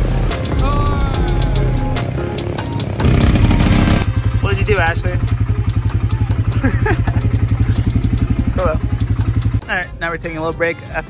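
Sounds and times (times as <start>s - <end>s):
quad bike engine running: 0.0s - 9.8s
person laughing: 6.3s - 8.1s.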